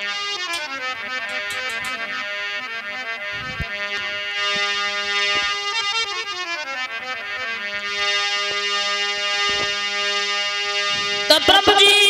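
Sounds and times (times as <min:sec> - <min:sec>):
harmonium chord: 0:00.0 - 0:12.0.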